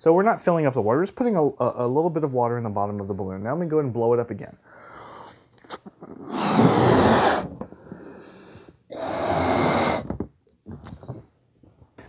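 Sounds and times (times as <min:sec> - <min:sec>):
man blowing up a balloon: 0:05.0 - 0:10.2.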